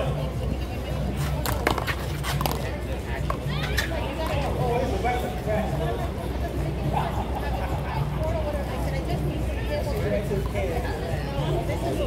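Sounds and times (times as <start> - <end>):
voices in background: 0.0 - 12.0.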